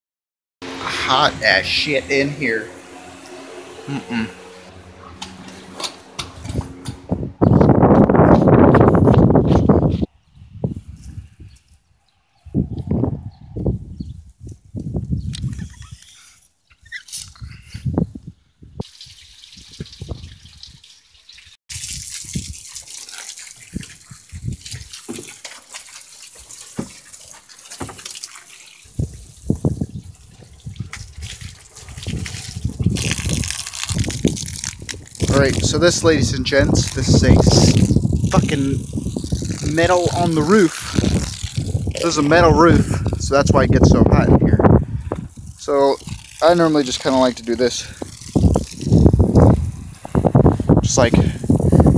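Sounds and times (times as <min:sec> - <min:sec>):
hose spraying water on wood: 0:00.6 - 0:07.0, 0:18.8 - 0:51.9.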